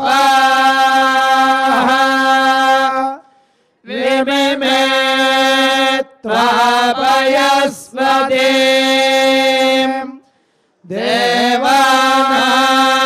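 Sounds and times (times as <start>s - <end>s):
person chanting mantras: 0.0s - 13.0s
breaths: 3.2s - 3.9s, 10.2s - 10.9s.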